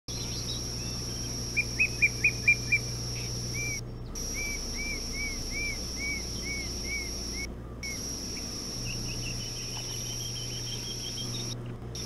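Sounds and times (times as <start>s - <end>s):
high-pitched whine: 0.1s - 12.0s
low hum: 0.1s - 12.0s.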